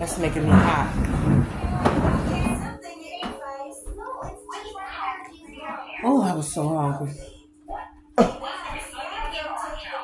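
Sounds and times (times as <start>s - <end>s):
dense noise: 0.0s - 2.8s.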